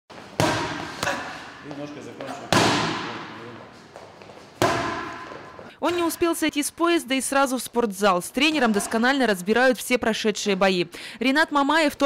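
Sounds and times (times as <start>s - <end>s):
boxing gloves hitting mitts: 0.1s - 6.0s.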